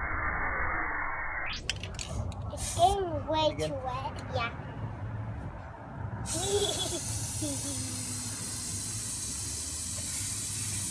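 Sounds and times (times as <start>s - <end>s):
spray paint can hissing: 2.6s - 3.0s, 6.2s - 10.9s.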